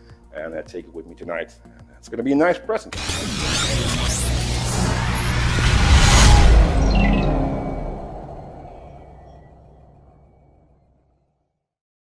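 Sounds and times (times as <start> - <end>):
deep reverberant logo sting: 3.0 - 10.8.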